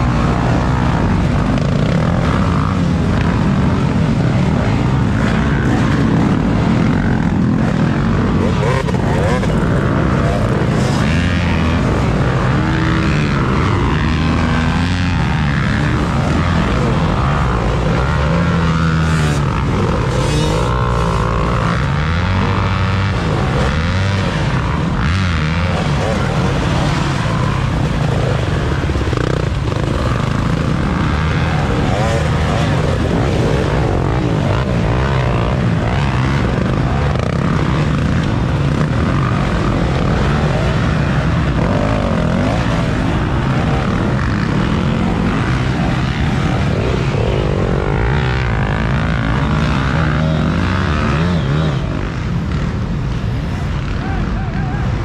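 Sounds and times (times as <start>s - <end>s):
dirt bike engines revving: 0.0s - 55.0s.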